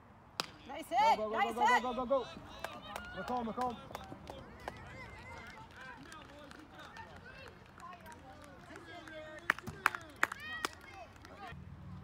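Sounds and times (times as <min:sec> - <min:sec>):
background chatter of voices: 0:01.4 - 0:11.6.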